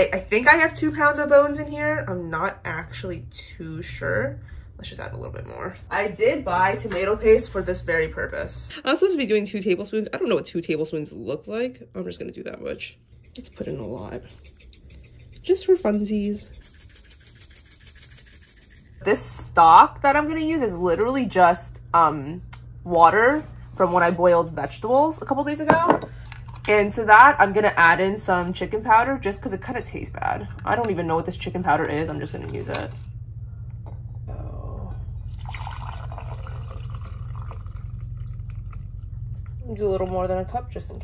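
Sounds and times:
steady low hum: 0.0 - 41.0
spice jar rattling: 13.1 - 19.0
liquid pouring into glass cup: 35.2 - 39.6.

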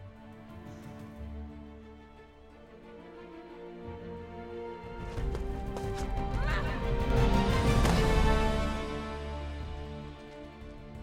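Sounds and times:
orchestral film score: 0.0 - 11.0
hooves clip-clopping: 4.8 - 7.1, 9.5 - 11.0.

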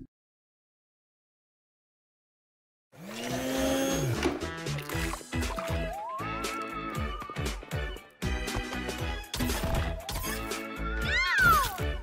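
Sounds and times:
cartoon blender motor whirring: 3.0 - 5.3.

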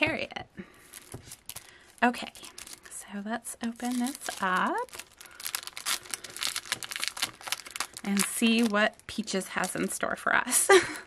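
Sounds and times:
cellophane sleeve crinkling: 0.8 - 10.1.

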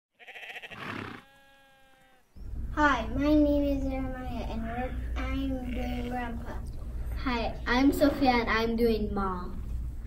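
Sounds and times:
sheep bleating: 0.2 - 2.2.

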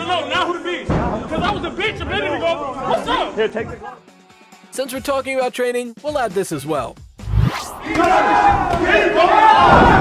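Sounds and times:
men shouting and talking: 0.0 - 5.0, 7.7 - 10.0
rising whoosh: 7.2 - 8.0.

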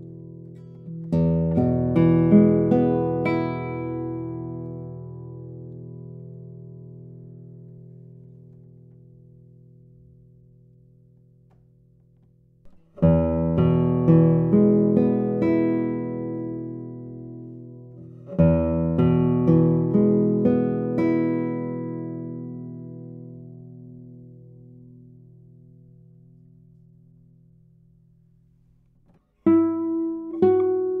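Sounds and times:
classical guitar plucked phrase: 0.0 - 11.9, 12.6 - 27.4, 29.4 - 31.0
classical guitar chord ringing: 0.0 - 28.1, 29.4 - 31.0.

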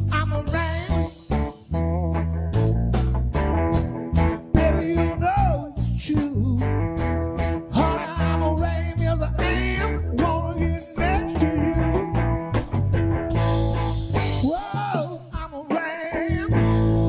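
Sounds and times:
blues funk band playing: 0.0 - 17.0.

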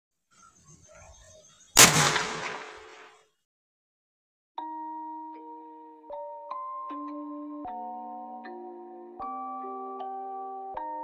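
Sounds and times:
firecracker bang: 1.8 - 3.2.

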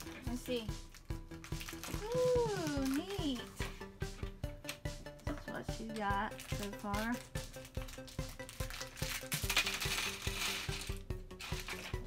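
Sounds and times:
background music with steady beat: 0.0 - 12.0
plastic bricks clicking and rattling: 6.5 - 12.0.

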